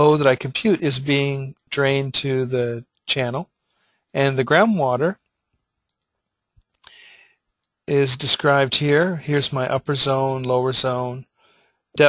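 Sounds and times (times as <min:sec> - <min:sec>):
man speaking: 0:00.0 - 0:03.5, 0:04.2 - 0:05.2, 0:07.9 - 0:11.3
soft hiss: 0:00.0 - 0:12.0
computer mouse clicks: 0:05.8 - 0:07.0.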